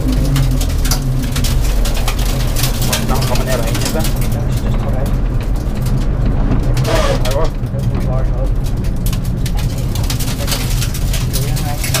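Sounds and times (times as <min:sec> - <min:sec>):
cabin ticks and rattles: 0:00.0 - 0:12.0
car engine running at low revs: 0:00.0 - 0:12.0.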